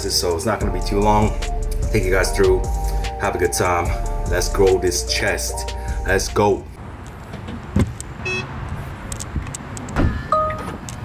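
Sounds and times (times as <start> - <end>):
short electronic car beep: 8.2 - 8.5, 10.1 - 10.8.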